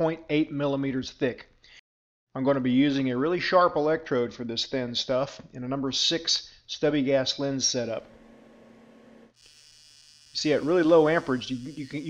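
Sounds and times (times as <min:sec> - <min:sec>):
welding arc buzzing: 0:08.0 - 0:12.0.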